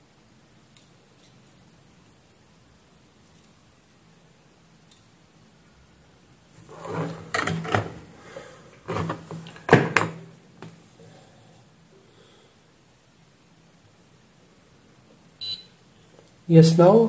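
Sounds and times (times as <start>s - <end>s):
faint hiss: 0.0s - 17.0s
objects knocking on a workbench: 8.9s - 10.8s.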